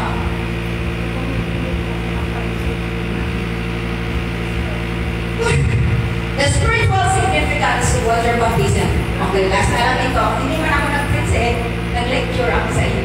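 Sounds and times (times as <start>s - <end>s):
woman's voice: 0.0s - 3.7s, 5.4s - 13.0s
steady low machine hum: 0.0s - 13.0s.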